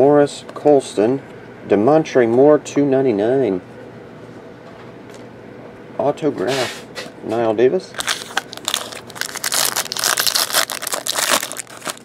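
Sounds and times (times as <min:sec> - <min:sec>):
foil wrapper tearing and crumpling: 0:08.0 - 0:12.0.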